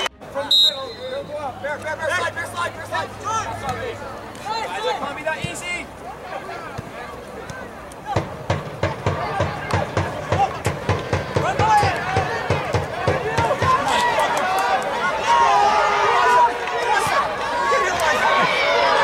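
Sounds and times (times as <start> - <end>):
many voices shouting: 0.0 - 19.0
sharp knocks: 8.1 - 13.8.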